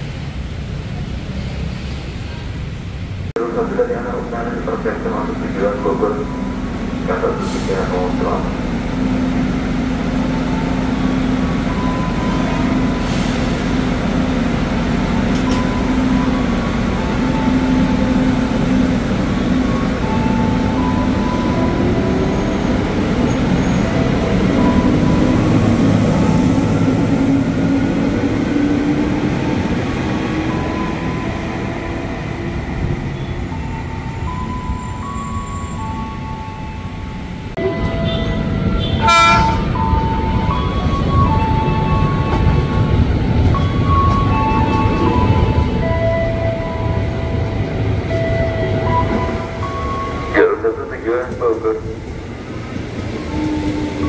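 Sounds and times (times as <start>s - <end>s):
electric train hum: 2.2s - 54.0s.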